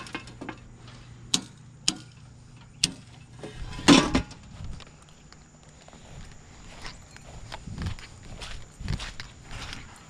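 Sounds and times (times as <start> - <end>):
circuit breakers clicking: 1.3 - 3.1.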